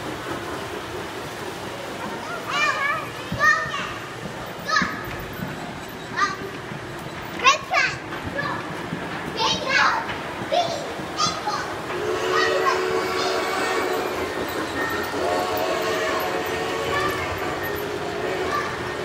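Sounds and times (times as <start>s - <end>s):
children calling and squealing: 1.8s - 19.0s.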